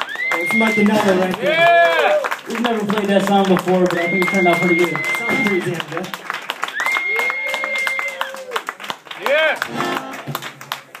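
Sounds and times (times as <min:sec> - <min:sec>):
audience clapping and calling out: 0:00.0 - 0:11.0.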